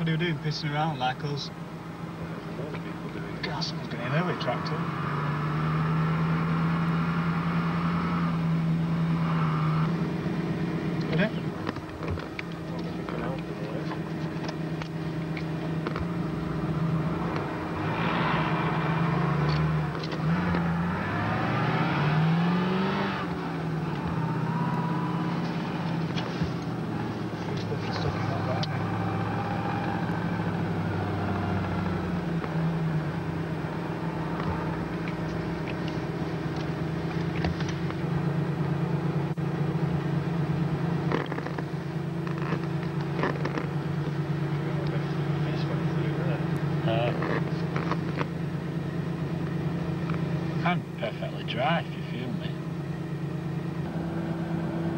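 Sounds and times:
car engine running in snow: 34.2s - 54.1s.

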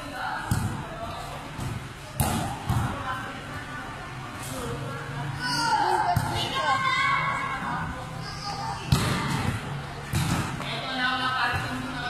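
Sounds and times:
children's voices: 5.4s - 8.9s.

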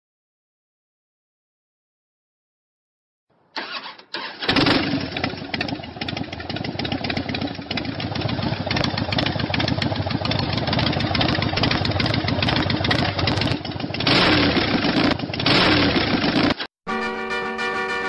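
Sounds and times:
motorcycle engine starting and idling: 3.6s - 16.7s.

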